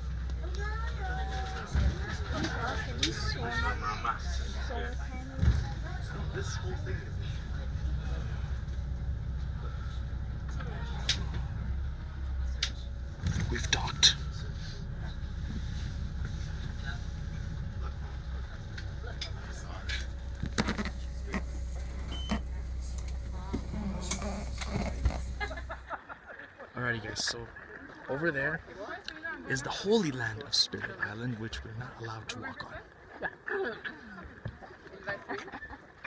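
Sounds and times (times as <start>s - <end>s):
boat engine rumbling: 0.0s - 31.0s
faint voices: 0.0s - 36.0s.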